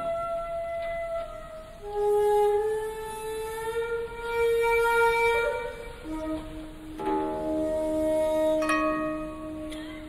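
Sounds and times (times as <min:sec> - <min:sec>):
flute note sliding upward: 0:00.0 - 0:09.8.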